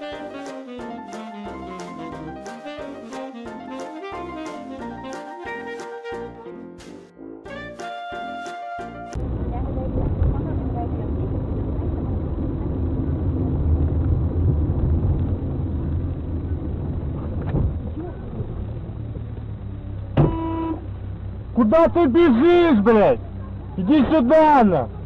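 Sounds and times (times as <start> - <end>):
brass band music: 0.0 - 9.2
car engine and road noise: 9.1 - 25.0.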